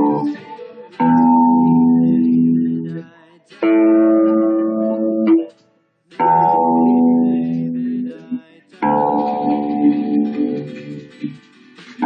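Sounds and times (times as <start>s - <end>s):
electric bass notes: 0.0s - 0.4s, 1.0s - 3.0s, 3.6s - 5.5s, 6.2s - 11.4s
backing music: 0.0s - 12.0s.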